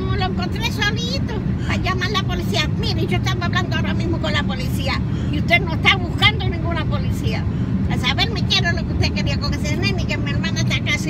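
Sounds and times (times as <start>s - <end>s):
car driving rumble: 0.0s - 11.0s
people talking: 0.0s - 11.0s.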